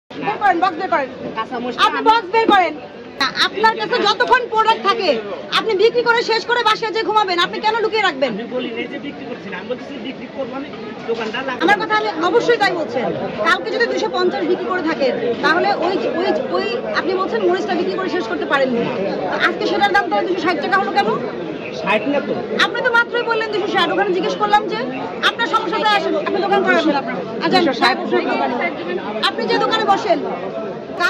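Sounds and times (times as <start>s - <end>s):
overlapping chatter: 0.1s - 31.0s.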